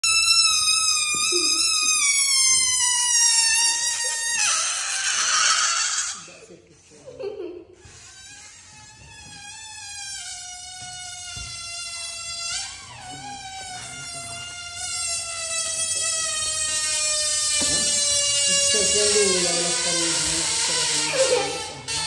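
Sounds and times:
air squealing from balloon neck: 0:00.0 - 0:06.4, 0:07.7 - 0:22.0.

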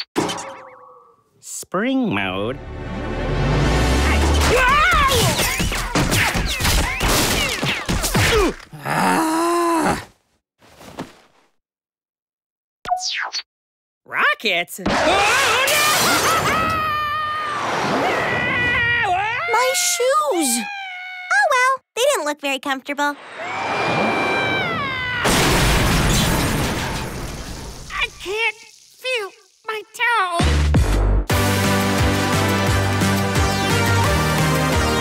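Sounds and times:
cartoon character groaning: 0:08.3 - 0:10.1.

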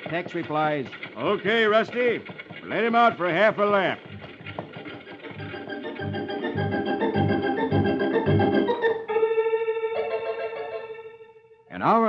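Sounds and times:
organ music with pulsing bass: 0:03.6 - 0:11.4.

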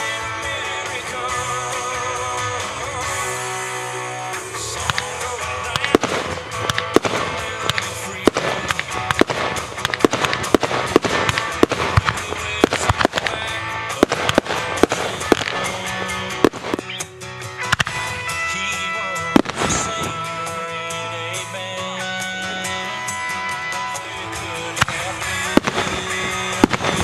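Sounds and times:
music: 0:00.0 - 0:27.0
fireworks bangs and cracks: 0:04.7 - 0:17.0, 0:19.2 - 0:20.6, 0:23.9 - 0:27.0.

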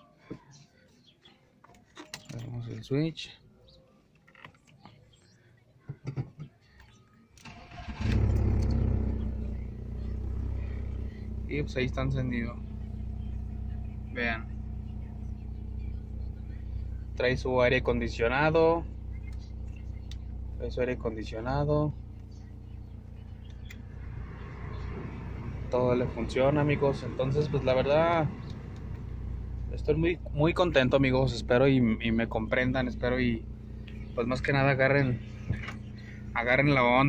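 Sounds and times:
car engine starting and idling: 0:07.4 - 0:37.0.

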